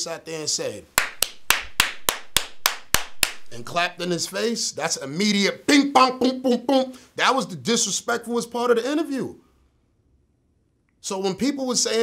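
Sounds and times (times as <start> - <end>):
man clapping hands: 1.0 - 3.8.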